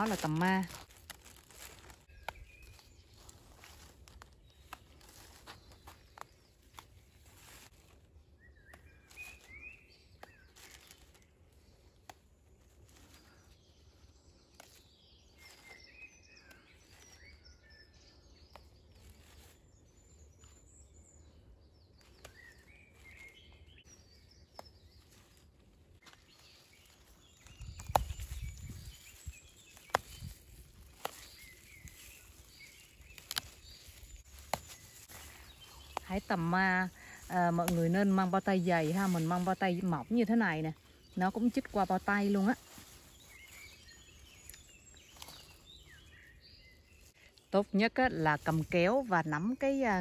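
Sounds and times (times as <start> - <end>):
faint birds chirping: 0.0 - 50.0
rustling of plants being picked: 0.0 - 50.0.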